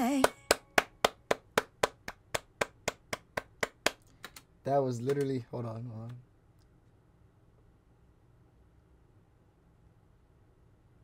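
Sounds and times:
hand clapping: 0:00.0 - 0:05.4.

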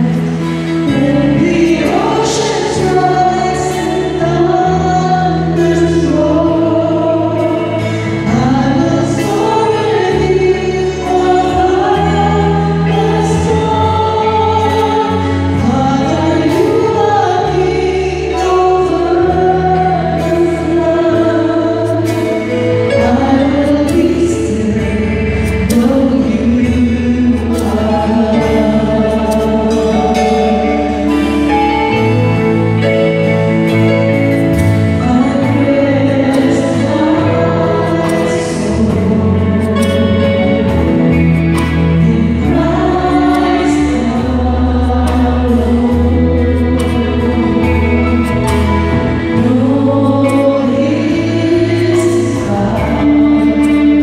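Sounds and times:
choir singing: 0:00.0 - 0:54.0
sustained accompaniment chords: 0:00.0 - 0:54.0.

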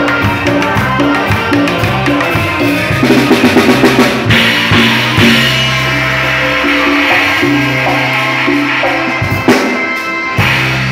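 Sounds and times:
bass line: 0:00.0 - 0:10.9
drum-kit cymbals: 0:00.0 - 0:10.9
saxophone long notes: 0:00.0 - 0:10.9
trumpet long notes: 0:00.0 - 0:10.9.

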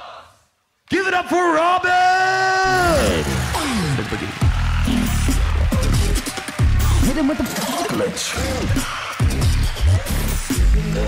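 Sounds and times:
man shouting over sound system: 0:00.9 - 0:04.9
deep pulsing bass music: 0:04.4 - 0:07.4.

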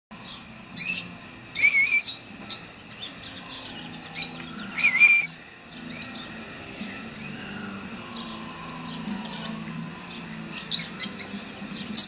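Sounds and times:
lovebirds chirping shrilly: 0:00.2 - 0:12.0.

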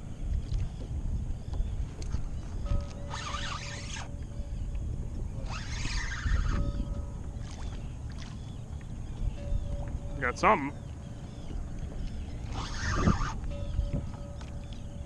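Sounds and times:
water rumbling against kayak: 0:00.0 - 0:15.0
wind: 0:00.0 - 0:15.0.

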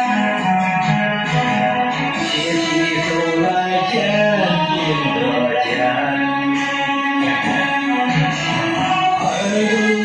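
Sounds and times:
instrumental backing music with guitar: 0:00.0 - 0:10.0
man singing into a microphone: 0:01.9 - 0:10.0.

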